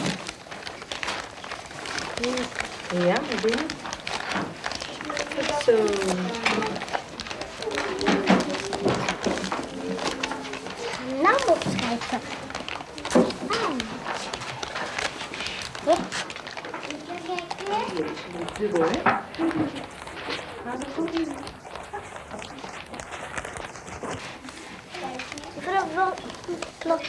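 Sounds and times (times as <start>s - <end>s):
wrapping paper crackling: 0.0s - 27.0s.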